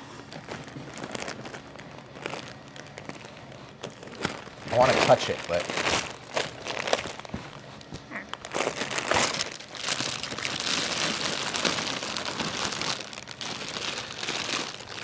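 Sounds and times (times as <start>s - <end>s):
plastic wrapping crinkling: 0.0s - 15.0s.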